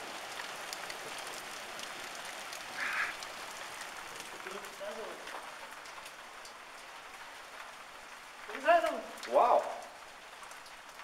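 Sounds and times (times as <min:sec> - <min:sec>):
hail and rain falling: 0:00.0 - 0:11.0.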